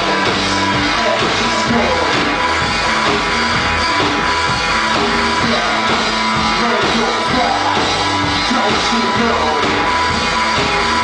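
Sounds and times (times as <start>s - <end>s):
electric bass guitar: 0.0s - 11.0s
rock band playing live: 0.0s - 11.0s.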